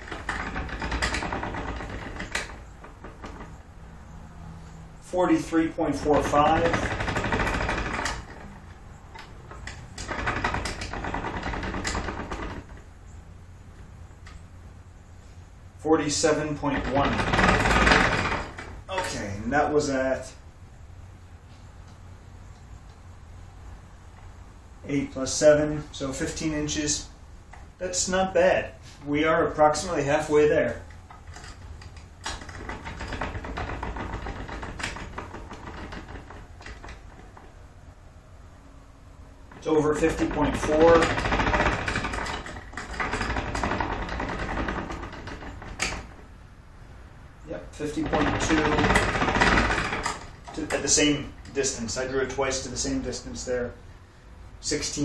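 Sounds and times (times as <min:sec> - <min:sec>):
mechanical clicking and rattling: 0:00.0 - 0:14.5, 0:16.0 - 0:19.4, 0:29.5 - 0:37.7, 0:39.4 - 0:46.4, 0:47.5 - 0:53.4.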